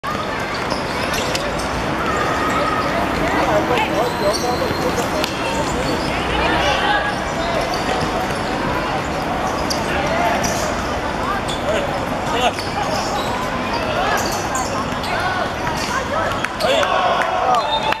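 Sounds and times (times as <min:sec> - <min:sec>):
people calling out: 0:00.4 - 0:18.0.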